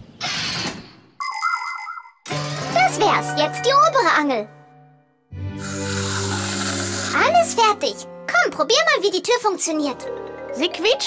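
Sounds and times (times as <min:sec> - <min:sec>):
bright electronic chime: 0:01.2 - 0:02.3.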